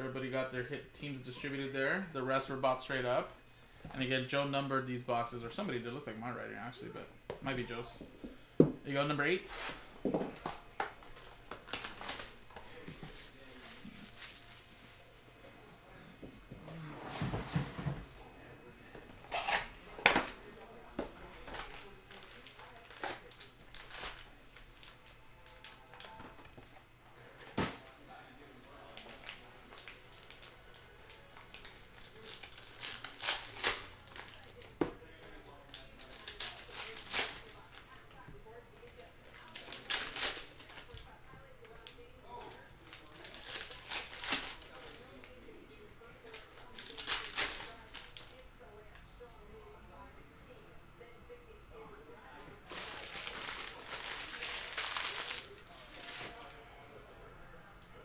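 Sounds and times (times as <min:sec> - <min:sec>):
plastic wrap crinkling: 0:10.3 - 0:15.3, 0:21.3 - 0:26.6, 0:28.7 - 0:35.1, 0:35.7 - 0:45.4, 0:46.2 - 0:48.4, 0:52.6 - 0:56.5.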